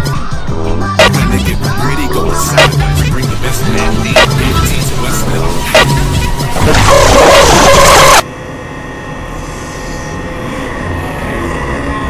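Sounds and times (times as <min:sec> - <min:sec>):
loud harsh distorted noise: 0:00.5 - 0:08.3.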